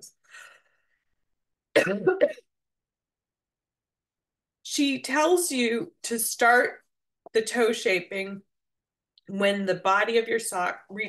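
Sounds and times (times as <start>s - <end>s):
woman coughing: 1.7s - 2.5s.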